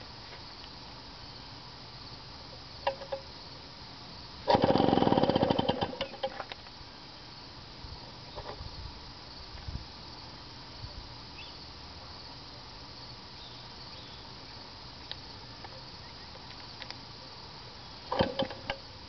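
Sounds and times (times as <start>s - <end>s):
two-stroke engine sputtering: 4.4s - 6.4s, 18.1s - 18.8s.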